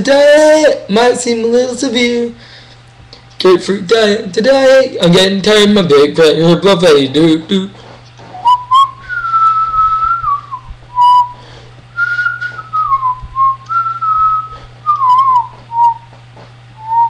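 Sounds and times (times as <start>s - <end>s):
faint low hum: 0.0s - 17.0s
man whistling a tune: 8.4s - 11.4s, 12.0s - 16.1s, 16.8s - 17.0s.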